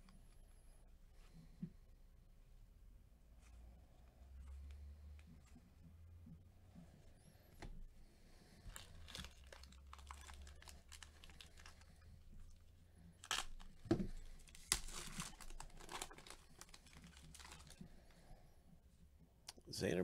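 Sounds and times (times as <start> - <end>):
foil wrapper crinkling and tearing: 8.7 - 12.6, 13.2 - 17.9.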